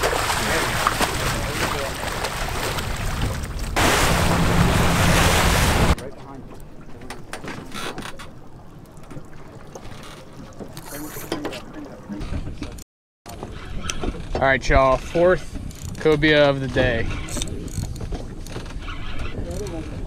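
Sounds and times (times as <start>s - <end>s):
fish splashing in net: 0.0s - 3.2s
low engine hum: 2.0s - 6.0s.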